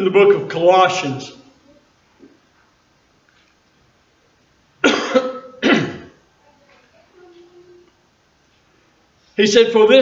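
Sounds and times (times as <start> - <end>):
man coughing: 4.8 - 6.2.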